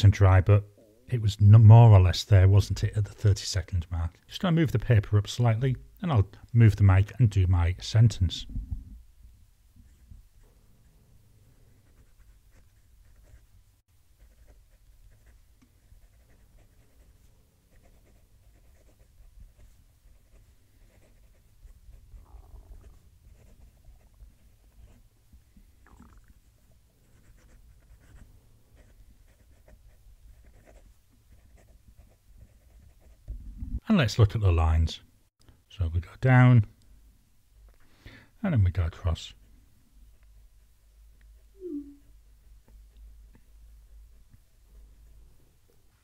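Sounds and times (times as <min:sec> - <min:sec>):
pen scratching on paper: 0:11.8 - 0:13.5, 0:14.2 - 0:22.2, 0:22.8 - 0:25.1, 0:27.1 - 0:33.3.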